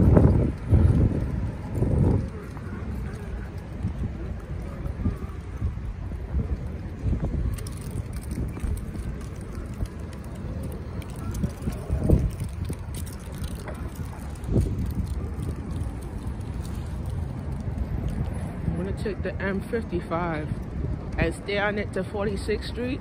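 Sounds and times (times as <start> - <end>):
city street traffic: 0.0 - 23.0
wind buffeting microphone: 0.0 - 23.0.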